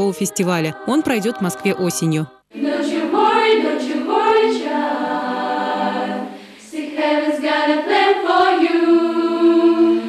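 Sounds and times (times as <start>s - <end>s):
girls' choir singing a cappella: 0.0s - 10.0s.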